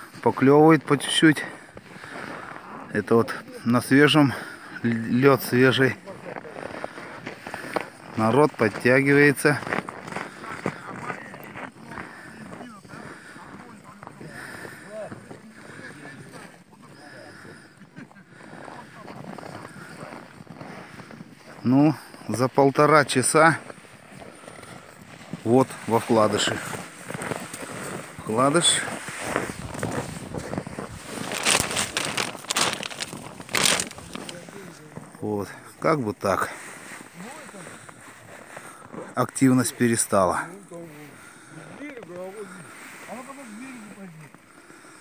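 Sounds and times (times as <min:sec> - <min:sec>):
plastic bag crinkling: 0:29.2 - 0:34.4.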